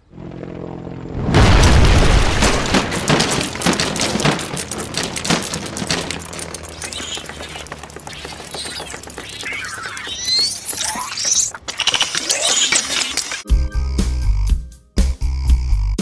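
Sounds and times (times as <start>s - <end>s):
heavy boom: 1.2s - 3.5s
clatter of knocks and crashes: 1.5s - 9.9s.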